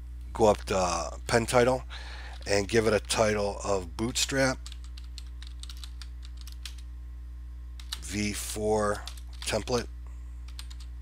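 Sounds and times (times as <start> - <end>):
low electrical hum: 0.0 - 11.0
keyboard typing clicks: 4.6 - 6.8, 7.8 - 8.0, 10.5 - 10.9.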